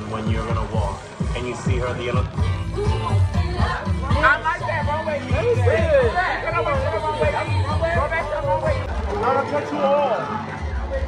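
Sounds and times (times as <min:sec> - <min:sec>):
music with steady bass beat: 0:00.0 - 0:11.0.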